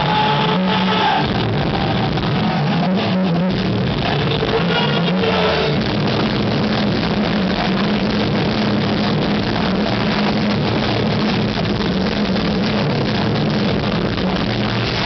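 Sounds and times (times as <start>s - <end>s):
distorted guitar chord: 0.0s - 15.0s
drums: 0.0s - 15.0s.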